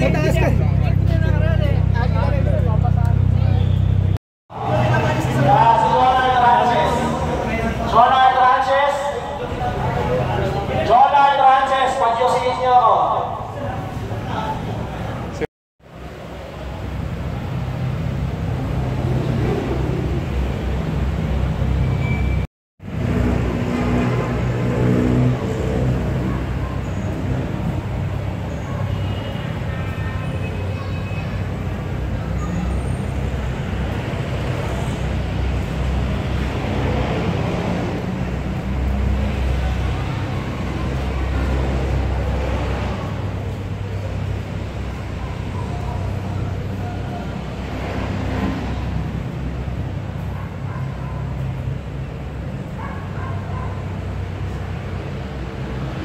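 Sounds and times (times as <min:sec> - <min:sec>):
car engines idling: 0:00.0 - 0:21.9, 0:22.8 - 0:56.0
crowd chatter: 0:08.7 - 0:11.1, 0:25.6 - 0:35.9, 0:37.2 - 0:56.0.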